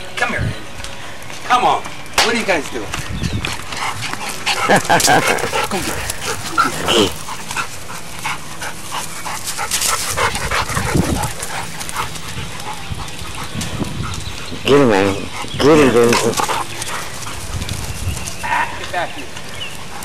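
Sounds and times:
dogs running on grass: 0.6s - 20.0s
dogs barking while playing: 3.5s - 18.8s.

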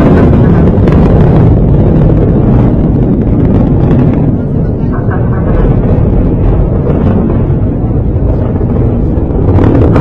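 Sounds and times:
rocket motors rumbling: 0.0s - 10.0s.

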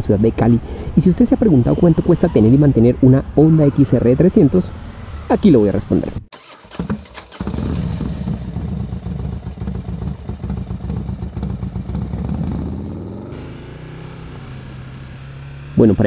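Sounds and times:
motorcycle engine running: 6.4s - 16.0s.

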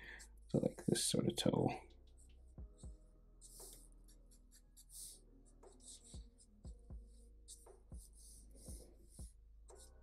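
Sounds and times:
marker scratching on paper: 2.1s - 10.0s.

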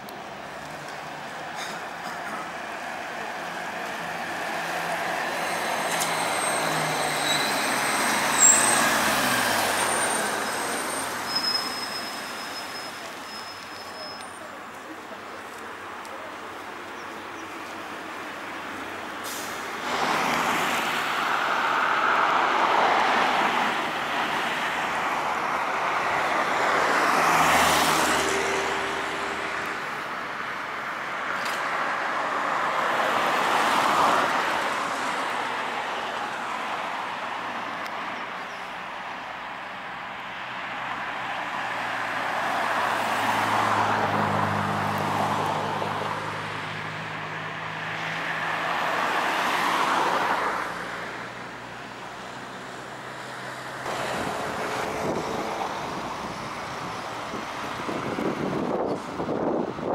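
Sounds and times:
cars and trolleybuses passing: 0.0s - 59.9s.

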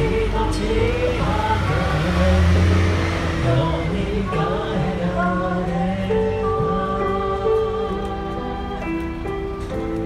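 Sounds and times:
faint singing: 0.0s - 9.2s
bus engine revving: 0.0s - 10.0s.

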